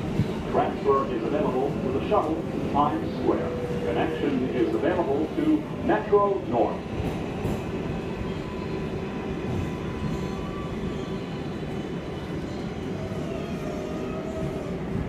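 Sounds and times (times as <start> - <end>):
rumble of train wheels: 0.0 - 15.0.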